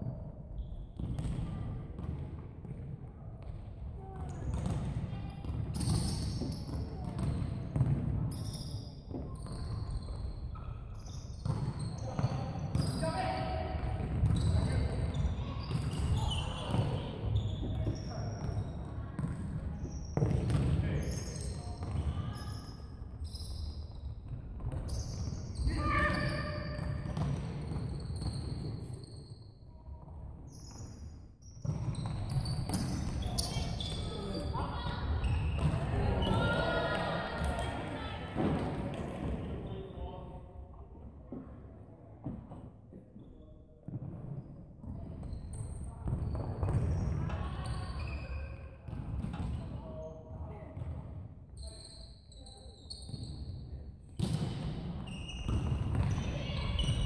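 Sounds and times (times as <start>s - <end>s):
players shouting in hall: 35.8s - 38.3s.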